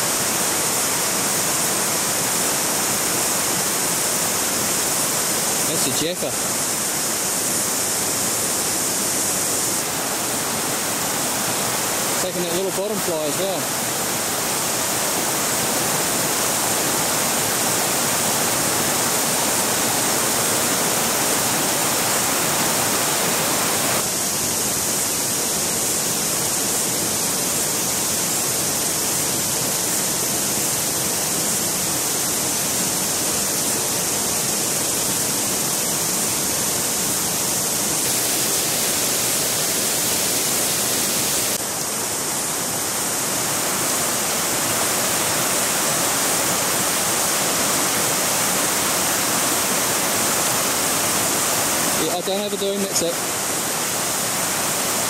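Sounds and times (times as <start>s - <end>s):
fast-flowing river water: 0.0s - 55.0s.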